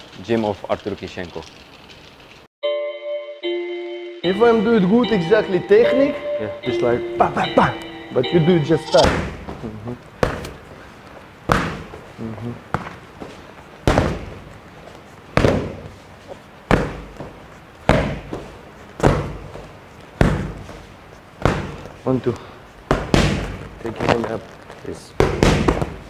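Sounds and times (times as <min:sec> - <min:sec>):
punches on padded focus mitts: 0:09.0 - 0:10.6, 0:11.4 - 0:14.5, 0:15.3 - 0:16.0, 0:16.6 - 0:24.2, 0:25.1 - 0:26.0.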